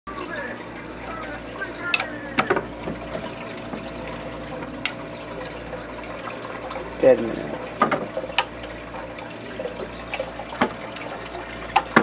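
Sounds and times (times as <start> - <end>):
aquarium filter humming: 0.1 - 12.0
trickling water: 0.1 - 12.0.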